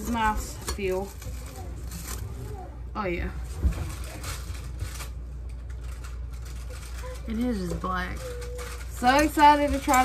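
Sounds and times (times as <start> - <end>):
faint handling sounds: 0.0 - 10.0
low background hum: 0.0 - 10.0.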